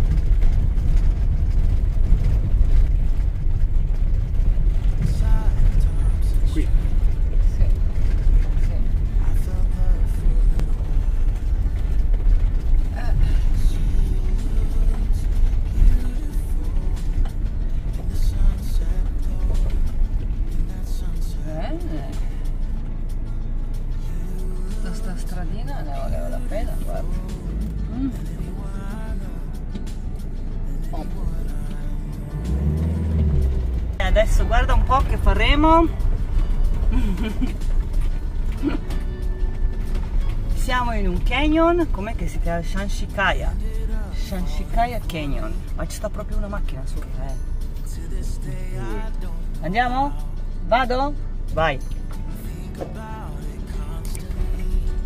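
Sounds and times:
engine and tyres rumbling on gravel: 0.0s - 55.0s
song playing: 12.9s - 55.0s.

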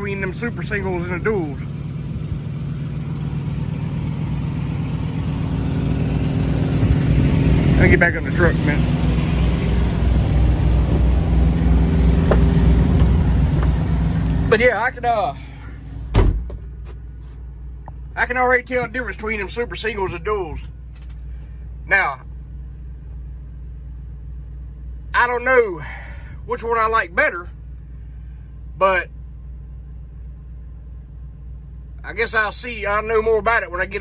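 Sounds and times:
diesel truck engine running: 0.0s - 34.0s
loud thump: 12.2s - 13.7s, 16.1s - 16.9s.

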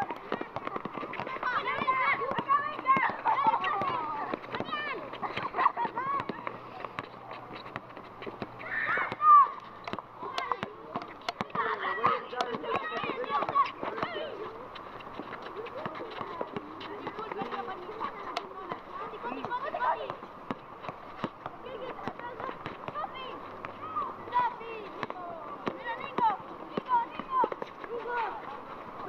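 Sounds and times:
basketball dribbling: 0.0s - 28.8s
running feet on asphalt: 0.0s - 29.0s
young players' voices: 0.0s - 29.0s.

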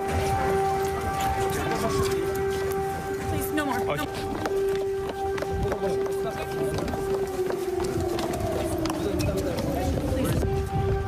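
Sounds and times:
air-raid siren: 0.0s - 11.0s
hurried footsteps: 0.0s - 11.0s
scattered voices: 0.0s - 11.0s.

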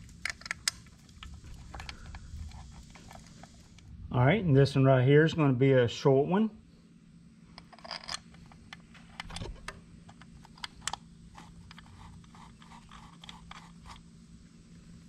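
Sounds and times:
low steady hum: 0.0s - 15.0s
metallic clicks and scrapes of bolts: 7.6s - 14.0s.

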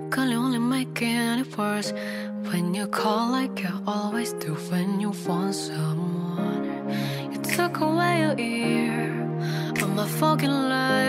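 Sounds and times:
slow pop song: 0.0s - 11.0s.

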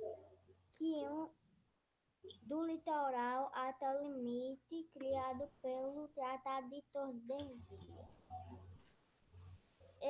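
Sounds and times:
faint low hum: 2.2s - 10.0s.

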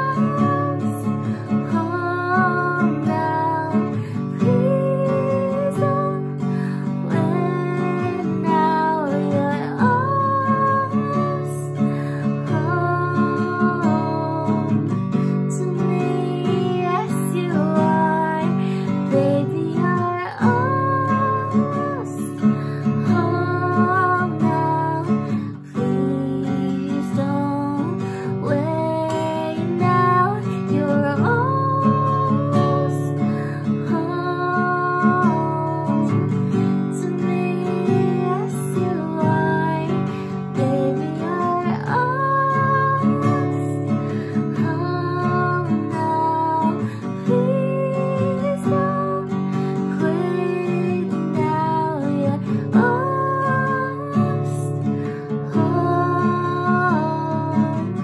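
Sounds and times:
woman singing: 0.0s - 58.0s.

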